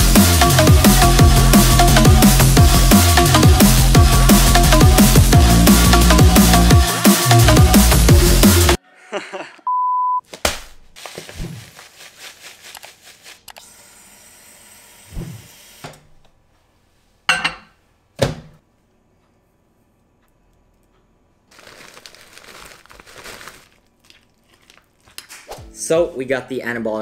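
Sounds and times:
plastic bag crinkling: 10.8 - 13.6, 21.5 - 25.5
oats poured into a ceramic bowl: 11.0 - 13.5.

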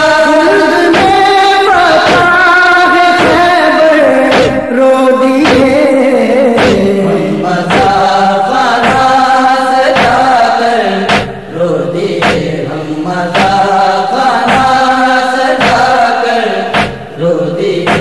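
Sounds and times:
man chanting a lament: 0.0 - 18.0
steady beat: 0.9 - 1.3, 3.2 - 3.5, 4.3 - 4.7, 5.4 - 5.8, 6.6 - 8.1, 8.8 - 9.2, 10.0 - 10.3, 11.1 - 11.5, 12.2 - 12.6, 13.4 - 13.7, 14.5 - 14.8, 15.6 - 16.0, 16.7 - 17.1.

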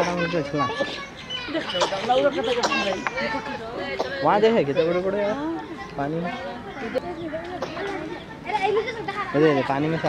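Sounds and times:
children calling out excitedly: 0.0 - 10.0
voices talking over one another: 0.0 - 10.0.

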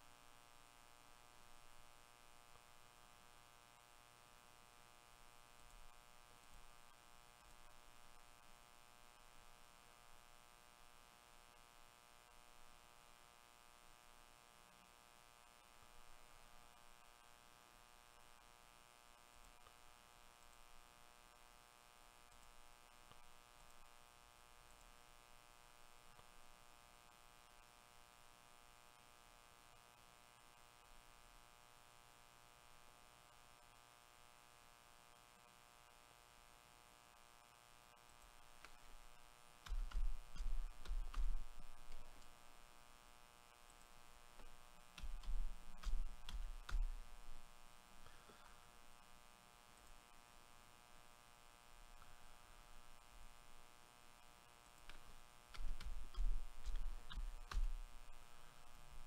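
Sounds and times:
faint electrical hum: 0.0 - 59.0.

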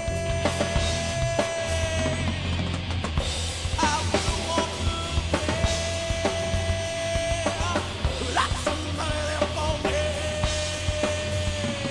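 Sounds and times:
rock band playing: 0.0 - 11.9.

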